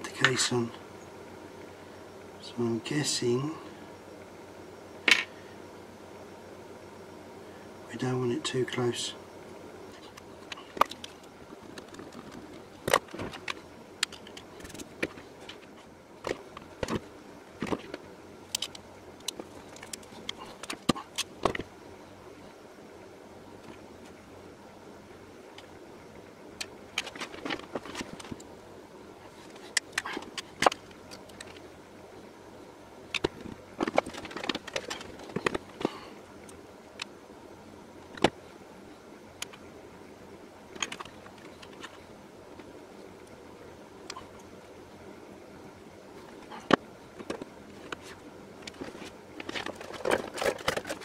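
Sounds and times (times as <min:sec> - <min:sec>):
metal parts clicking and scraping: 0:33.1 - 0:35.9, 0:40.7 - 0:42.0, 0:46.4 - 0:51.0.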